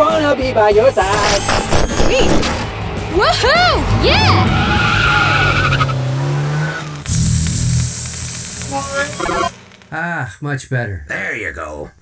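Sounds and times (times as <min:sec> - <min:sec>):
music: 0:00.0 - 0:05.5
car engine pulling away: 0:02.6 - 0:09.9
electric hiss and hum of sparking tool: 0:06.8 - 0:10.5.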